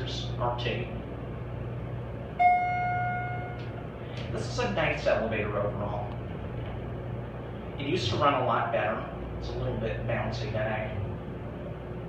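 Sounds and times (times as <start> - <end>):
elevator low hum: 0.0 - 12.0
elevator chime ding: 2.4 - 3.7.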